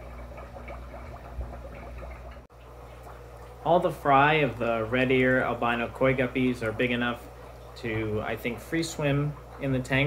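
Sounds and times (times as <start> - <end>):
aquarium bubbling: 0.0 - 10.0
low steady hum: 0.0 - 10.0.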